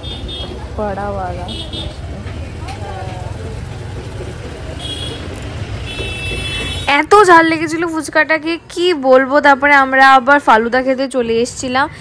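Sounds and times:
low traffic rumble: 0:00.0 - 0:12.0
people talking: 0:00.3 - 0:05.3, 0:06.8 - 0:12.0.

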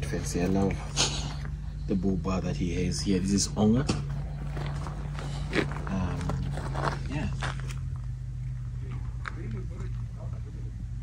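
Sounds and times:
air compressor humming: 0:00.0 - 0:11.0.

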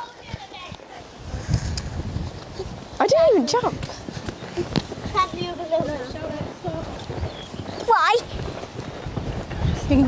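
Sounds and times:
hoofbeats on sand: 0:00.0 - 0:10.0.

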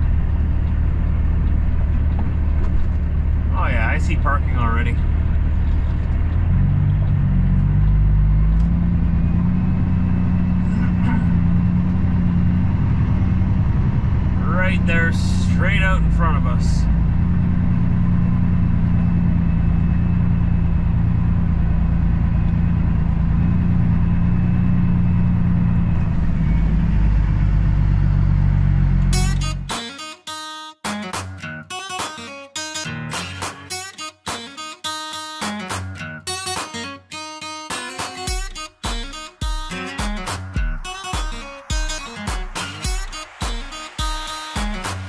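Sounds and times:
diesel truck engine running: 0:00.0 - 0:29.7
guitar-led background music: 0:13.6 - 0:17.2, 0:29.0 - 0:45.0.

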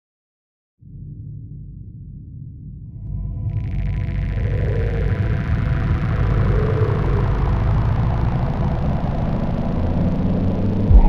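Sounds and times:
deep steady rumble: 0:01.0 - 0:11.0.

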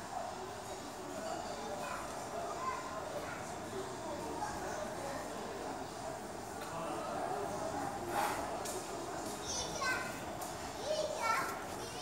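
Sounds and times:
background murmur: 0:00.0 - 0:12.0.

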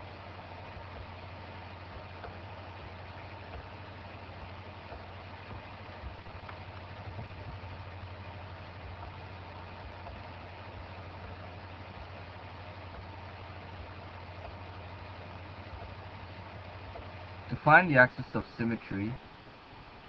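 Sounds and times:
constant hiss: 0:00.0 - 0:20.0
low hum: 0:00.0 - 0:20.0.

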